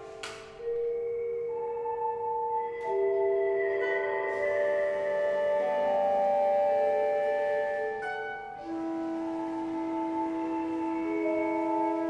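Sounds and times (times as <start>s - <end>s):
chamber ensemble sustained tones: 0.0s - 12.0s.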